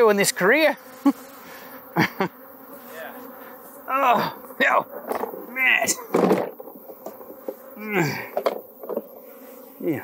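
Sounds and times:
honey bees buzzing: 0.0s - 10.0s
man laughing: 1.0s - 1.2s, 1.9s - 2.4s, 7.8s - 8.4s.

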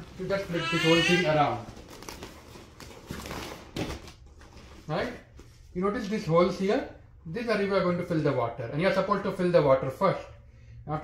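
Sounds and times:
vinyl sheet rustling and crinkling: 1.5s - 6.3s.

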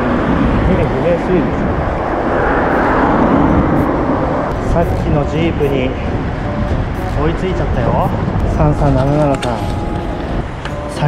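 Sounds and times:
road traffic: 0.0s - 11.0s
wind noise on microphone: 0.0s - 11.0s.

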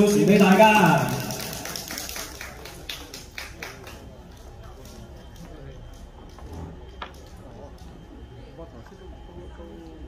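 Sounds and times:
audience clapping: 0.0s - 5.4s.

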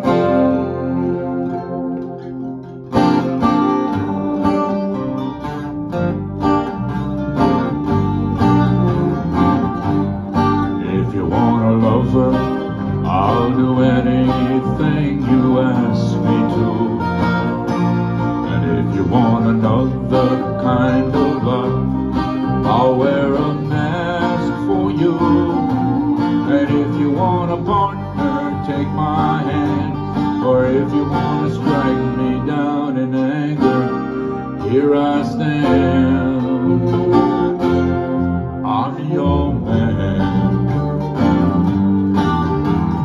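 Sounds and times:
harmonica melody: 0.0s - 43.0s
small band playing: 0.0s - 43.0s.

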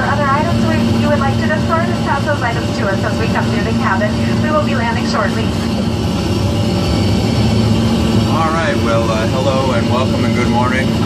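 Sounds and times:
airliner cabin drone in flight: 0.0s - 11.0s.

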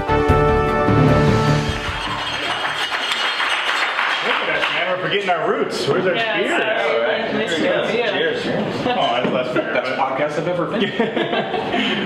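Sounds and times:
audience clapping: 1.2s - 5.4s.

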